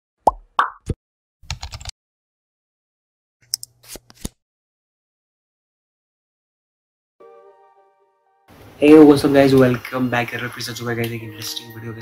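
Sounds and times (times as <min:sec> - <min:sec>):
cartoon plops: 0:00.2 - 0:01.0
keyboard typing clicks: 0:01.5 - 0:01.9.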